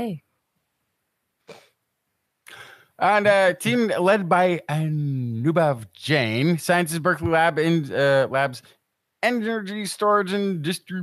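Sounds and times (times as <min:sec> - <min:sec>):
person speaking: 0:02.5 - 0:11.0.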